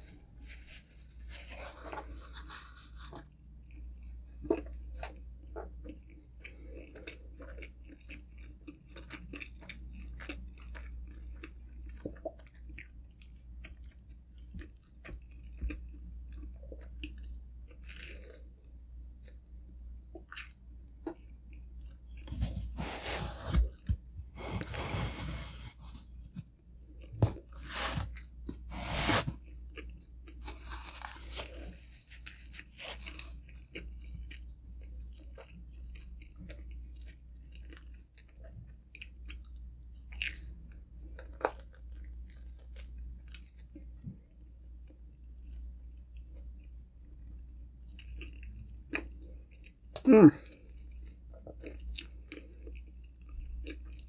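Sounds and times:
chewing: 0:03.1 - 0:18.5, 0:29.4 - 0:44.0, 0:44.8 - 0:54.0
crunching pizza crust: 0:22.1 - 0:38.0.

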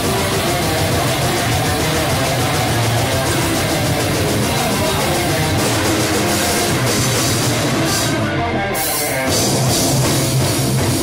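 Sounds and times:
distorted electric guitars: 0:00.0 - 0:11.0
metalcore band playing live: 0:00.0 - 0:11.0.

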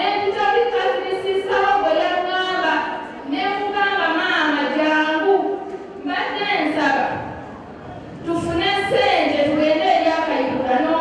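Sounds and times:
woman speaking: 0:00.0 - 0:07.2, 0:08.2 - 0:11.0.

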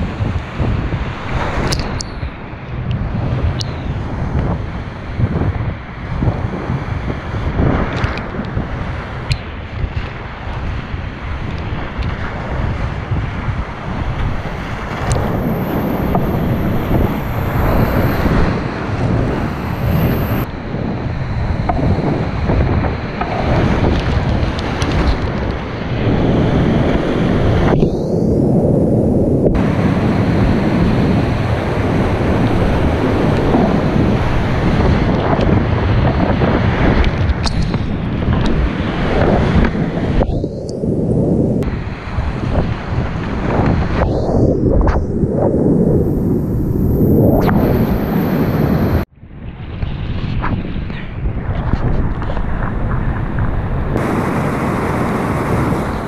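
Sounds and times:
wind buffeting microphone: 0:00.0 - 0:56.0
whitewater rapids rushing: 0:54.0 - 0:56.0.

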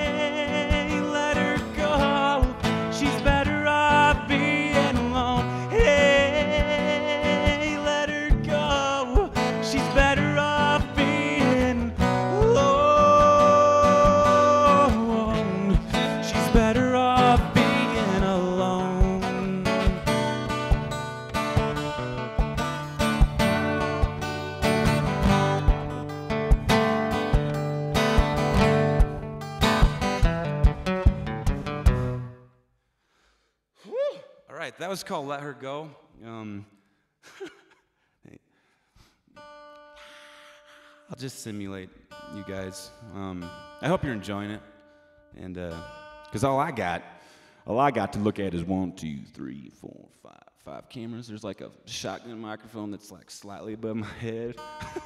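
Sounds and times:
man singing: 0:00.0 - 0:20.6
acoustic guitar flat-picking: 0:00.0 - 0:32.6, 0:39.3 - 0:41.2, 0:41.9 - 0:47.6, 0:54.5 - 0:55.0.

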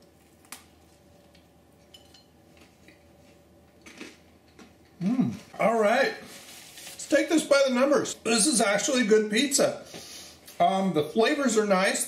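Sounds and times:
quiet chewing with crackles: 0:00.0 - 0:01.9, 0:02.5 - 0:05.6.

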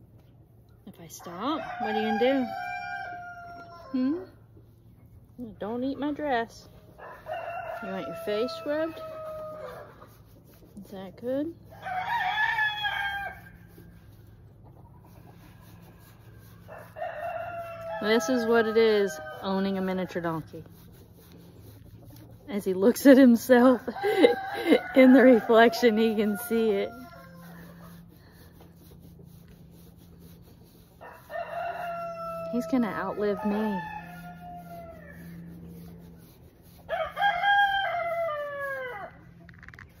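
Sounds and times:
rooster crowing: 0:01.5 - 0:04.2, 0:07.0 - 0:10.0, 0:11.7 - 0:13.6, 0:16.6 - 0:19.9, 0:23.8 - 0:28.1, 0:31.0 - 0:35.6, 0:36.8 - 0:39.3.

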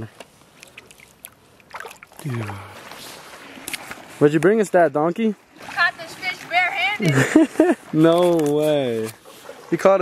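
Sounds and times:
water lapping at shoreline: 0:00.0 - 0:10.0.

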